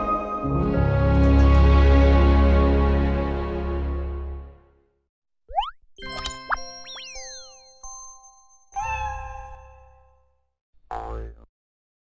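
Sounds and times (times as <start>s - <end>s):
springy cartoon sound effects: 5.5s - 7.9s.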